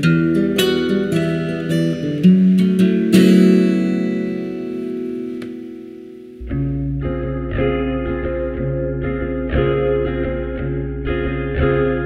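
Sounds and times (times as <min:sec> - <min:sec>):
acoustic guitar chord ringing: 0:00.0 - 0:12.0
guitar string pluck: 0:00.0 - 0:12.0.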